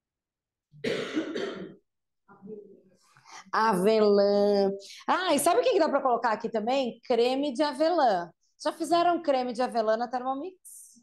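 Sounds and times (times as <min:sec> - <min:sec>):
person clearing throat: 0:00.8 - 0:01.9.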